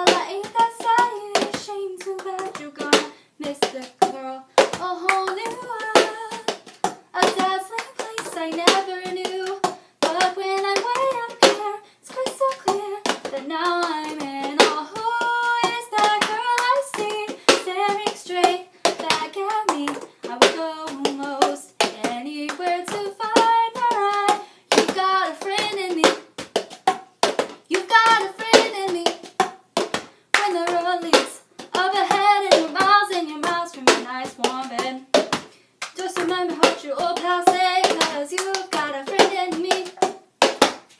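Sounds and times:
woman singing: 0:00.0 - 0:06.6, 0:07.2 - 0:26.2, 0:27.7 - 0:29.2, 0:30.4 - 0:35.2, 0:36.0 - 0:40.0
hand claps: 0:00.0 - 0:40.9.

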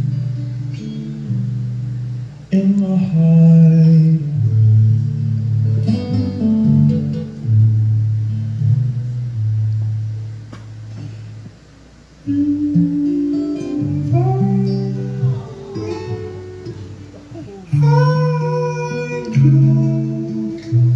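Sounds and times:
acoustic guitar playing: 0:00.0 - 0:20.9
person singing: 0:12.3 - 0:20.9.

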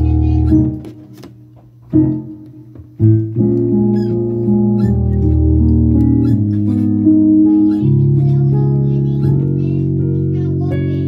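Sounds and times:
piano playing slow chords: 0:00.0 - 0:01.1, 0:01.8 - 0:11.0.

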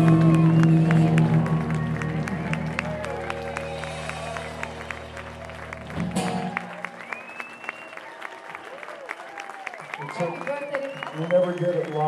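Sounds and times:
audience applause: 0:00.0 - 0:12.0
whistles: 0:00.2 - 0:01.0, 0:07.0 - 0:08.2, 0:10.0 - 0:12.0.

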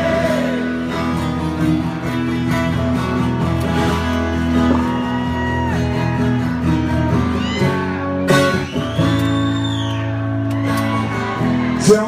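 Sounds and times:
live rock band playing: 0:00.0 - 0:12.0
strummed acoustic guitars: 0:00.0 - 0:12.0.

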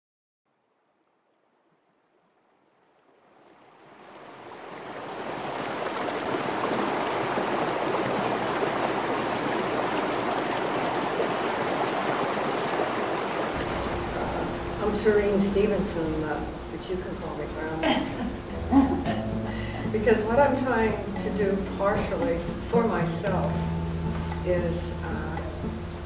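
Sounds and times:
stream rushing over cascade: 0:01.2 - 0:26.0.

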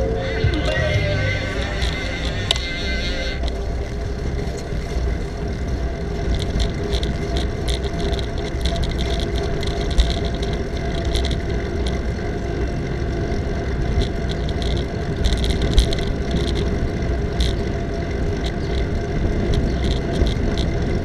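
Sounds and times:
road rumble: 0:00.0 - 0:21.0
wind: 0:00.0 - 0:21.0.

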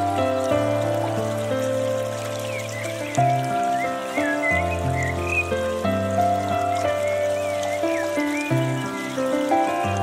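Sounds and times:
calm instrumental music: 0:00.0 - 0:10.0.

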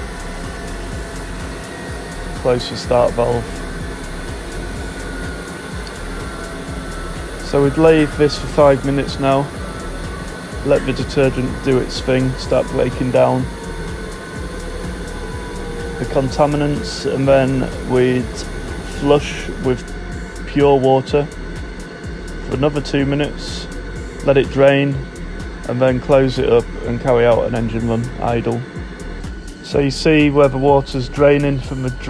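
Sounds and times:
auxiliary power unit drone: 0:00.0 - 0:32.0
faint constant whine: 0:00.0 - 0:32.0
faint hum: 0:00.0 - 0:32.0
jet engine coasting down: 0:00.0 - 0:32.0.

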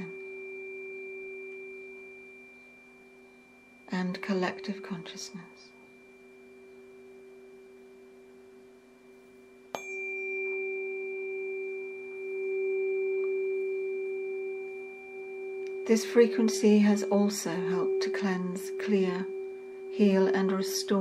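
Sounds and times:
tuning fork ringing: 0:00.0 - 0:21.0.

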